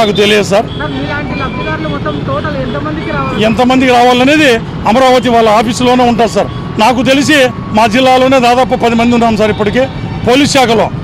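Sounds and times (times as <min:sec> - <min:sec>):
street noise rumble: 0:00.0 - 0:11.0.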